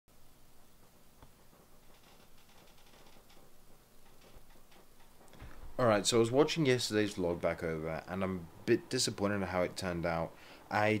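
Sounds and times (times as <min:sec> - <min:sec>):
man speaking: 0:05.8 - 0:11.0.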